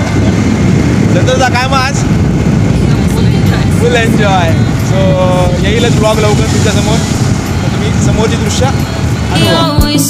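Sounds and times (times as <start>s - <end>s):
motorcycle road noise: 0.0s - 10.0s
wind buffeting microphone: 0.0s - 10.0s.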